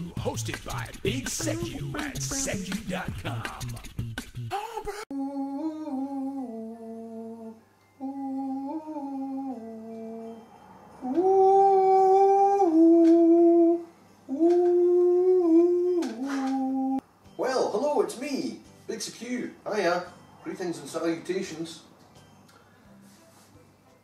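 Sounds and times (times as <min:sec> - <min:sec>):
person humming a slow tune: 0:04.5 - 0:17.0.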